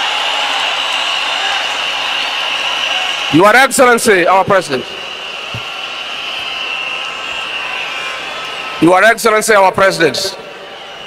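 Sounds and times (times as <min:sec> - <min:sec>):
stadium crowd cheering and applauding: 0:00.0 - 0:11.0.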